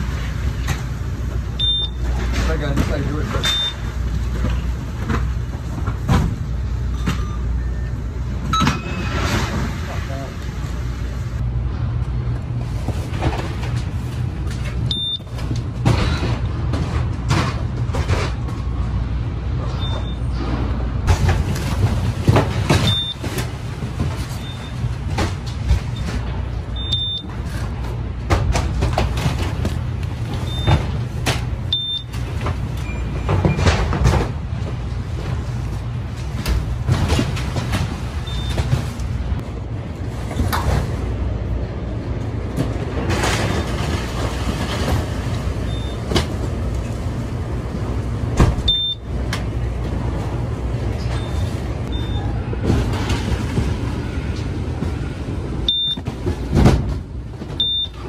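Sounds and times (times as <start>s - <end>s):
conveyor humming: 0.0s - 58.0s.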